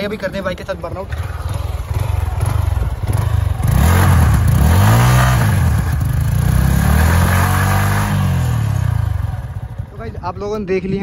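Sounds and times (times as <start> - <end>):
motorcycle engine revving: 0.0 - 10.6.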